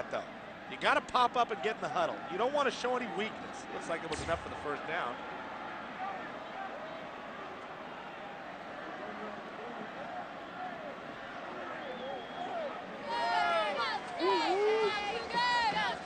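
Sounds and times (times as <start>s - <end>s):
stadium crowd murmur: 0.0s - 16.0s
cheerleaders shouting chants: 13.0s - 16.0s.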